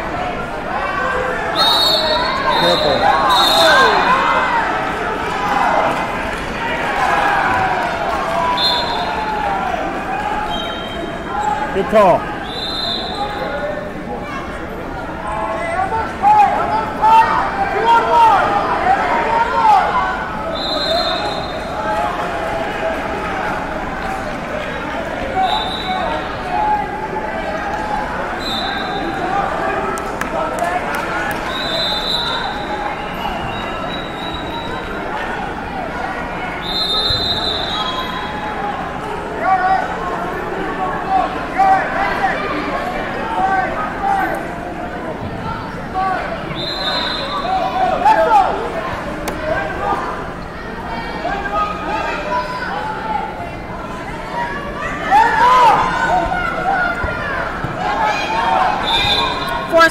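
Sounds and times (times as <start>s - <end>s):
shouting and chatter echoing in gym: 0.0s - 59.9s.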